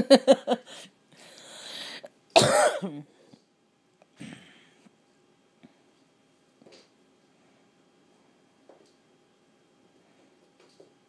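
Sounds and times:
person laughing: 0:00.0 - 0:00.9
person coughing: 0:02.4 - 0:03.1.

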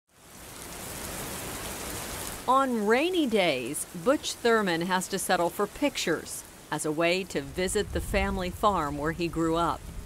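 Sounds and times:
steady rain falling: 0:00.1 - 0:10.0.

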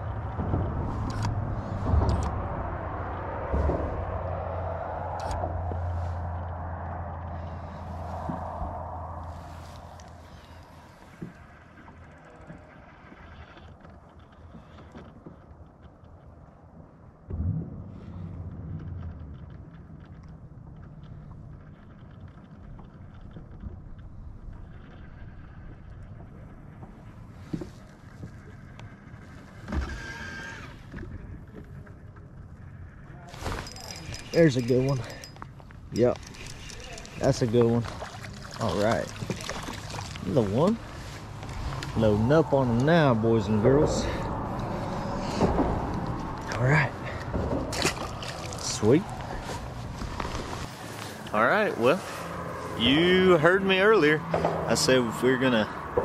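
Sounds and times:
electric trolling motor hum: 0:29.6 - 0:30.9.

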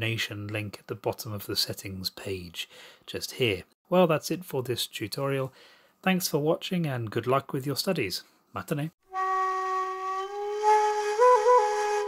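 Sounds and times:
flute holding long note: 0:09.1 - 0:12.0.

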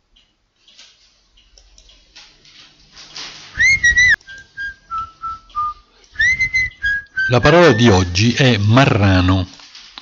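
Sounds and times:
whistled jingle tune: 0:03.6 - 0:08.3.

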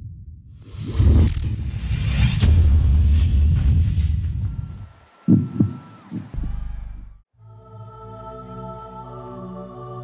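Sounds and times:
heartbeat thumps: 0:04.4 - 0:07.2.

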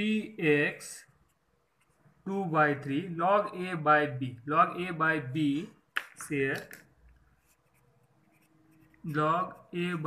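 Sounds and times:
faint writing sounds: 0:00.8 - 0:02.3, 0:06.3 - 0:10.0.

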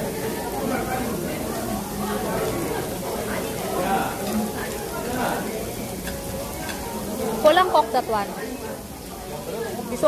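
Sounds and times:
meat sizzling on a grill: 0:00.0 - 0:10.0.

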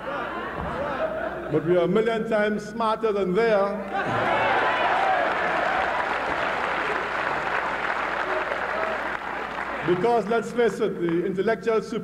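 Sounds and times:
audience applauding: 0:03.9 - 0:10.3.

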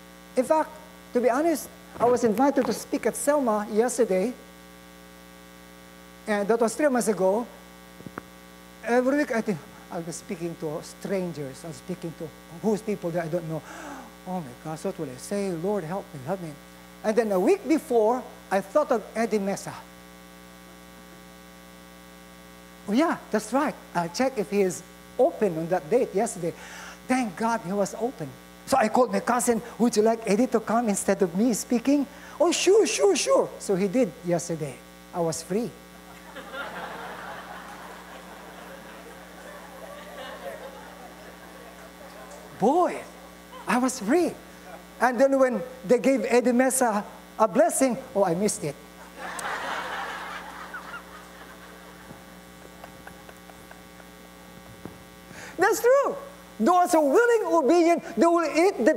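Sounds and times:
electrical mains hum: 0:00.0 - 0:58.9
man's voice: 0:00.4 - 0:04.4, 0:08.8 - 0:19.9, 0:22.9 - 0:35.8, 0:41.2 - 0:48.8, 0:55.6 - 0:58.9
congregation laughing: 0:36.0 - 0:43.8, 0:49.0 - 0:54.1.

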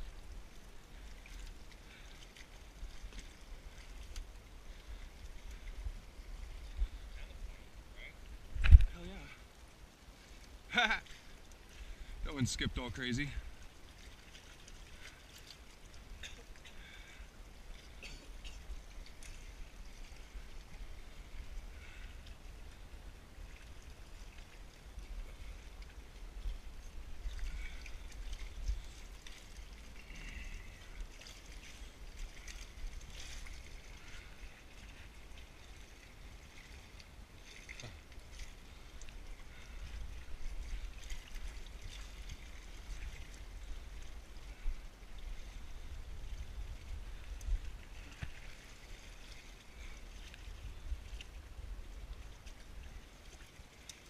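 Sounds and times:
water lapping against rocks: 0:00.0 - 0:54.0.

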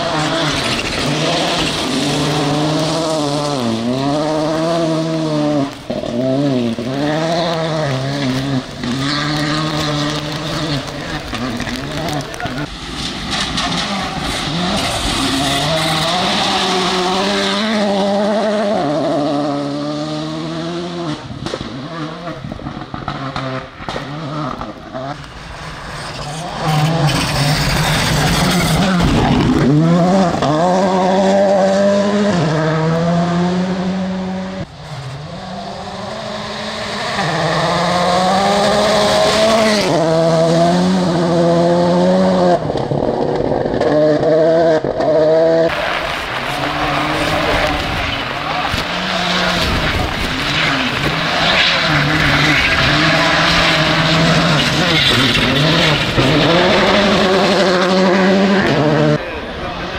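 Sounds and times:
rally car engines revving: 0:00.0 - 0:59.9.

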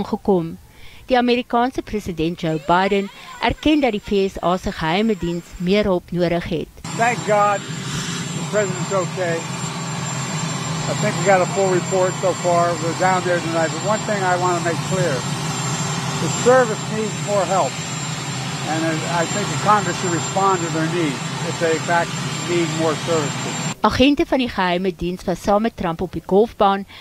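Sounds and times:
helicopter turbine engines running: 0:00.6 - 0:24.6
man speaking into microphones: 0:06.9 - 0:07.7, 0:08.4 - 0:09.5, 0:10.8 - 0:15.3, 0:16.2 - 0:17.8, 0:18.6 - 0:23.6.

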